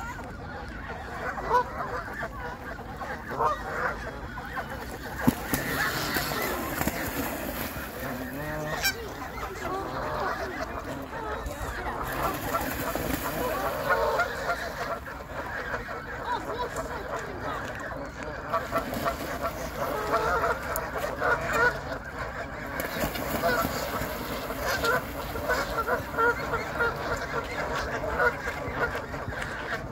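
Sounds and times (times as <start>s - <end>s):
geese honking: 0.0s - 29.9s.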